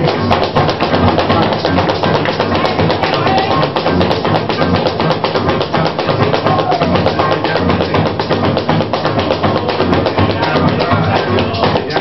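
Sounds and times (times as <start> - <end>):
maraca rhythm: 0.0 - 12.0.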